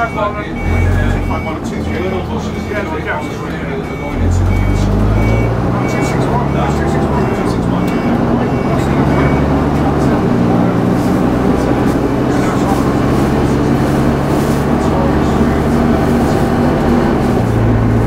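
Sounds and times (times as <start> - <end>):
short high beep: 0.0 - 2.0, 3.8 - 6.8
bus diesel engine running: 0.0 - 18.0.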